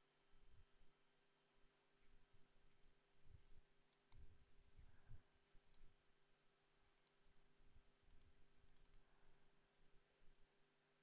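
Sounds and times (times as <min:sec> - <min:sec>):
faint computer mouse clicks: 0:03.9 - 0:04.3, 0:05.6 - 0:05.9, 0:06.9 - 0:07.2, 0:08.1 - 0:09.1.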